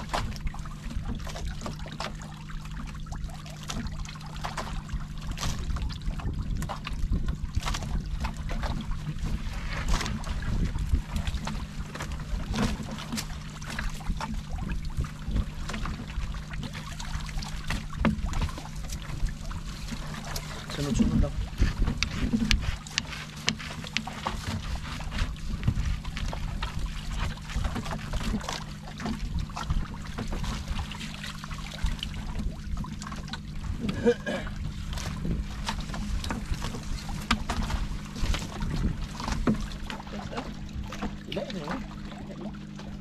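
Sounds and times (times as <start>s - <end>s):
boat engine droning: 0.0s - 43.0s
knocks and clicks of net hauling: 0.0s - 43.0s.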